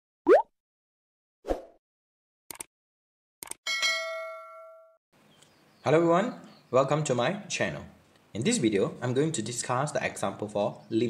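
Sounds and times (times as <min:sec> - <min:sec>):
cartoon rising pop: 0:00.3 - 0:00.5.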